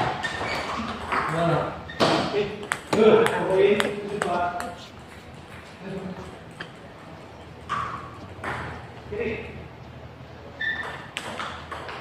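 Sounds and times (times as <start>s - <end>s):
table tennis ball clicking: 2.6s - 4.8s.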